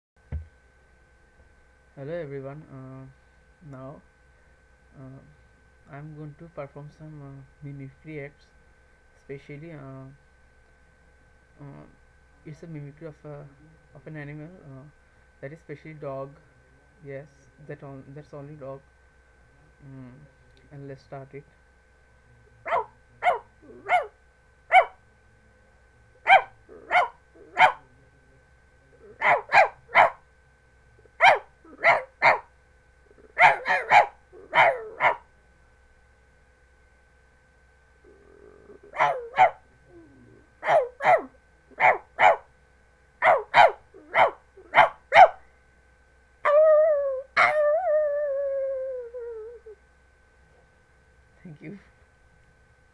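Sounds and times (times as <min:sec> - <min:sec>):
man imitating dog barks: 0:33.4 - 0:35.2
man howling: 0:46.5 - 0:49.8.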